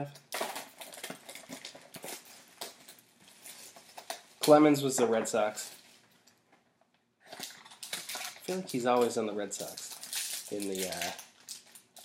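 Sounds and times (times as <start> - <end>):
plastic wrapper crinkling: 0.3 - 4.8, 7.2 - 12.0.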